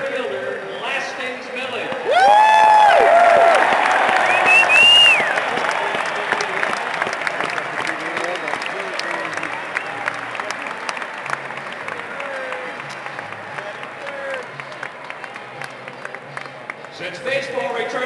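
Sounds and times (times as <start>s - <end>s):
crowd cheering and clapping: 1.8s - 17.8s.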